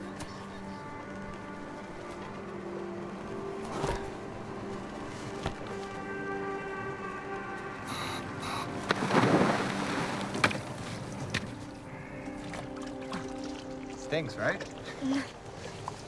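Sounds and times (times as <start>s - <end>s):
background music: 0.0s - 16.0s
loud splash into water: 8.9s - 10.4s.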